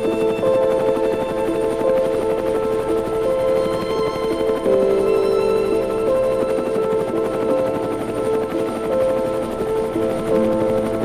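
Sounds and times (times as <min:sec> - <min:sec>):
helicopter rotor chopping: 0:00.0 - 0:11.0
music of held notes: 0:00.0 - 0:11.0.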